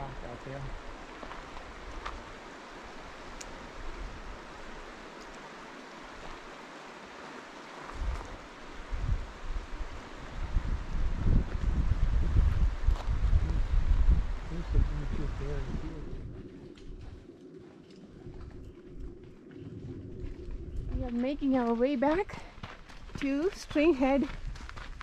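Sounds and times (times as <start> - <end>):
water running over rocks: 0.0 - 10.6
wind buffeting microphone: 7.9 - 25.0.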